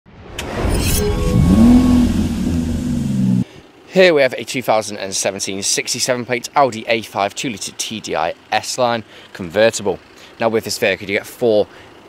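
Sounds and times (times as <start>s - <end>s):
car engine revving: 1.2s - 3.6s.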